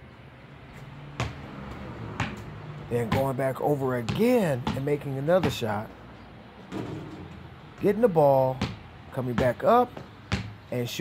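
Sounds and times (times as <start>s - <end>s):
basketball bouncing on concrete: 1.1s - 5.9s, 6.7s - 10.8s.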